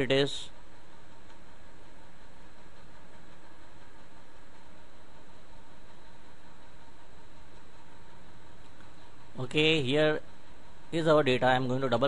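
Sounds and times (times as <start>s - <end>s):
faint hum: 0.0s - 12.0s
microphone hiss: 0.0s - 12.0s.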